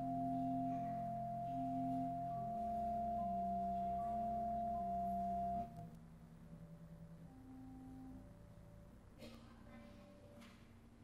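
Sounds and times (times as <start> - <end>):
church organ playing slow music: 0.0 - 5.9.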